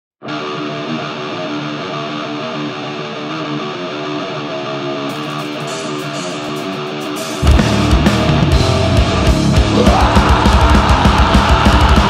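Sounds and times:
electric guitar riff: 0:00.2 - 0:12.0.

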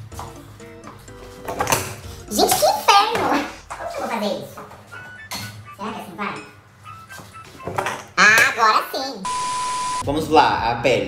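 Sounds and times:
censor bleep: 0:09.3 - 0:10.0.

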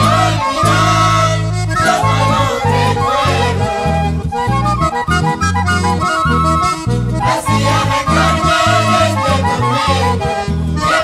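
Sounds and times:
accordion melody: 0:00.0 - 0:11.0
strong bass line: 0:00.0 - 0:11.0.

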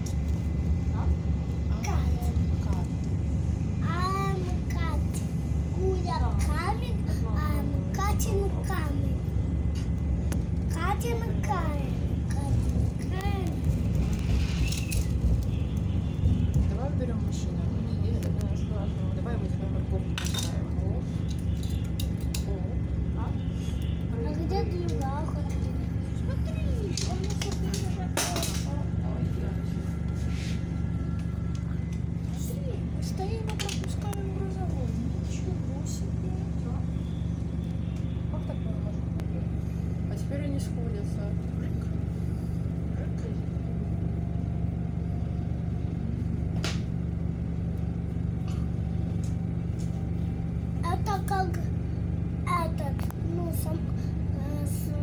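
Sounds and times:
electric train hum and rumble: 0:00.0 - 0:55.0.

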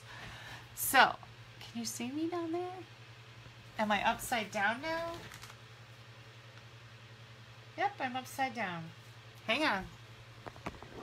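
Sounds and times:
steady low hum: 0:00.0 - 0:11.0
woman speaking: 0:00.8 - 0:02.9, 0:03.7 - 0:05.3, 0:07.8 - 0:10.0.

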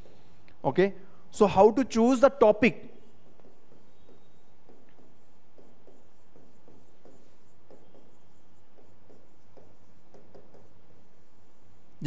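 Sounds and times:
stylus tapping and scratching screen: 0:02.9 - 0:12.0.

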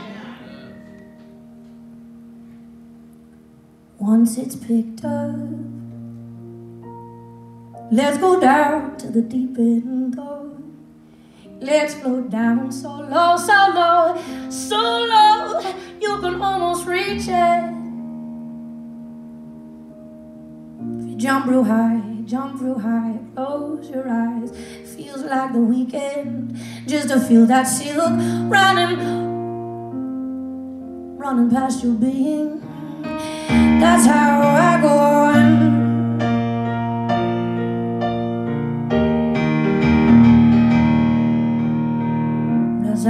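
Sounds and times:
piano chord ringing: 0:00.0 - 0:03.6
held instrumental chords: 0:00.0 - 0:04.1, 0:26.0 - 0:43.0.

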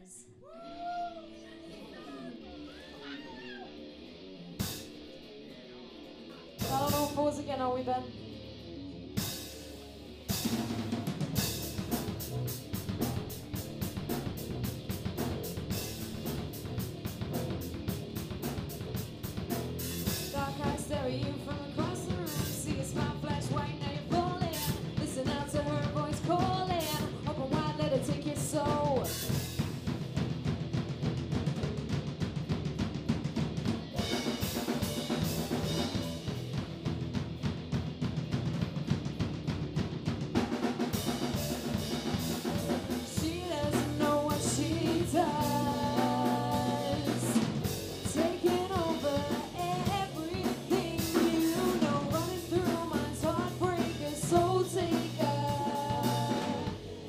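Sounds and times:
live rock band: 0:01.3 - 0:57.0
drums steady beat: 0:06.5 - 0:08.0, 0:09.2 - 0:57.0
women singing: 0:20.3 - 0:29.2, 0:42.5 - 0:56.8.

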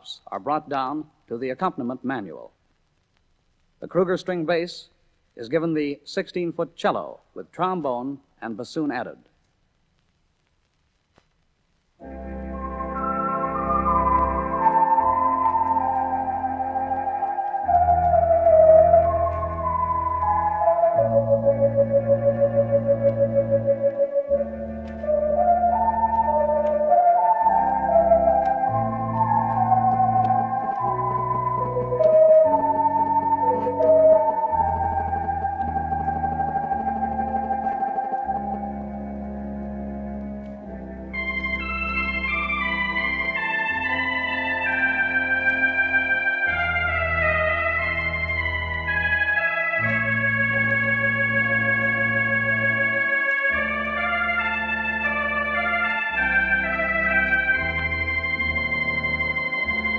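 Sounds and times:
electronic organ melody: 0:12.0 - 0:59.9.

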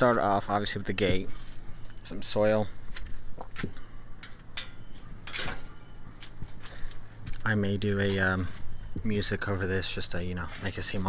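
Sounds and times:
metal gate clicks and knocks: 0:04.2 - 0:05.7.

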